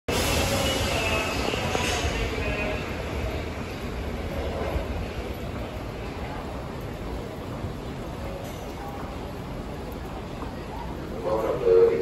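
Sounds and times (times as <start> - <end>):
subway train rumble: 0.1 - 12.0.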